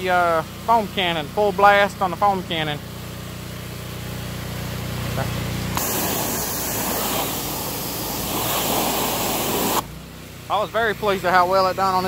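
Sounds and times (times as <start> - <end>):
pressure washer engine running: 0.0 - 12.0
water spray hissing: 5.7 - 9.8.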